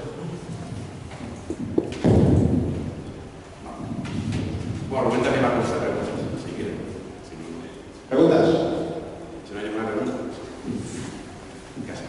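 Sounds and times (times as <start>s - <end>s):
microphone handling thump: 0.8s - 3.0s.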